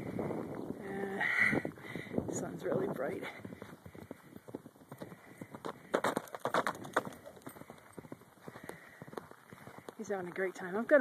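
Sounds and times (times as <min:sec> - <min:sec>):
horse hoofbeats galloping: 0:02.6 - 0:11.0.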